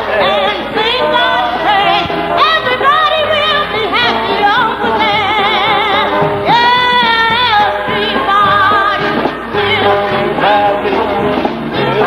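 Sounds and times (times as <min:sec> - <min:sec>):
gospel music: 0:00.0 - 0:12.0
person singing with vibrato: 0:00.0 - 0:12.0.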